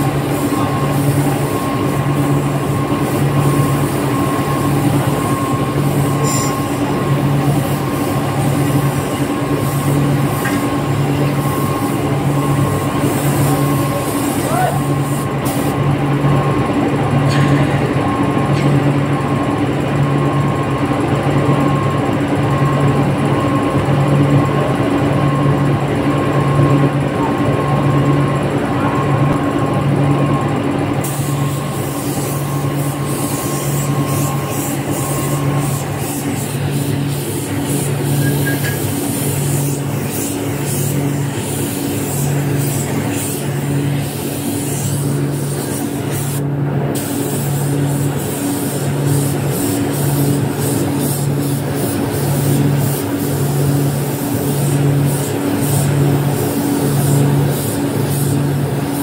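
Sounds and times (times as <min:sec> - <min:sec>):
air spray gun hissing: 0:00.0 - 0:15.9, 0:31.0 - 0:59.0
spray booth machinery hum: 0:00.0 - 0:59.0.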